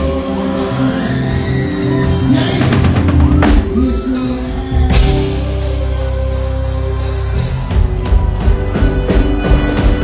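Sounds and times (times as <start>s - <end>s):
drums: 0.0s - 10.0s
live band playing: 0.0s - 10.0s
person singing: 0.0s - 10.0s.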